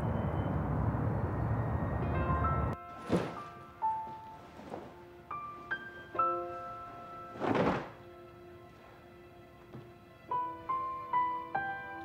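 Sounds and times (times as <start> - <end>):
soft piano background music: 1.9 - 12.0.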